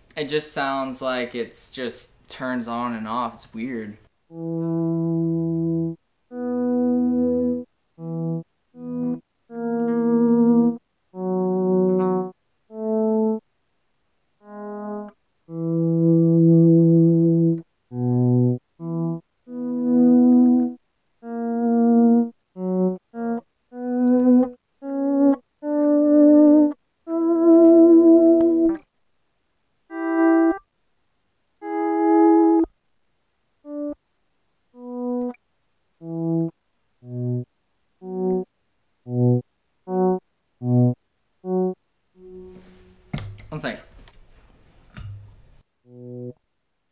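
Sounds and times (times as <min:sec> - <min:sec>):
electric guitar notes and chords: 0:04.4 - 0:13.4, 0:14.4 - 0:28.8, 0:29.9 - 0:30.6, 0:31.6 - 0:32.7, 0:34.8 - 0:35.4, 0:36.0 - 0:38.5, 0:39.1 - 0:43.5, 0:45.9 - 0:46.4.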